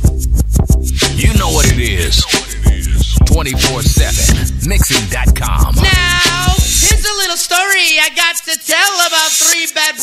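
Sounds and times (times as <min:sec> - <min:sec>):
rapping over a heavy beat: 0:00.8 - 0:10.0.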